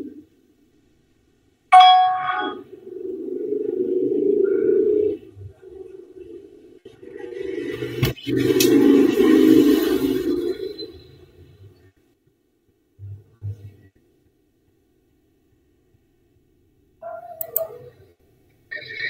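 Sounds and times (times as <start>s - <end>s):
notification chime ding: 1.8s - 2.6s
muffled microphone background noise: 2.7s - 8.2s, 11.6s - 14.8s
sharp click: 17.4s - 17.7s.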